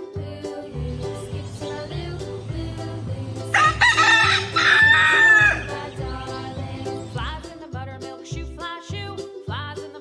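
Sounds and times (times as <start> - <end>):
background music with beat: 0.0 - 10.0
rooster crowing: 3.5 - 5.9.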